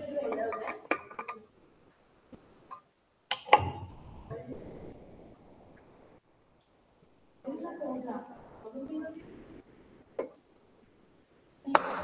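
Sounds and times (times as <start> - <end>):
background voice: 3.6 - 6.2.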